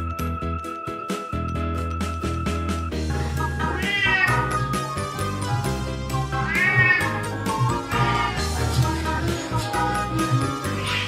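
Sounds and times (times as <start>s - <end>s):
background music: 0.0s - 11.0s
cat meowing: 3.6s - 4.6s, 6.4s - 7.3s, 7.9s - 8.7s, 10.2s - 11.0s.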